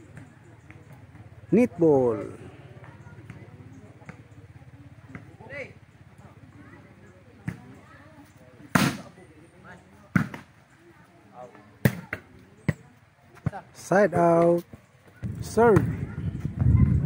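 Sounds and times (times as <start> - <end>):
volleyball smacks: 8.7 - 9.1, 10.1 - 10.5.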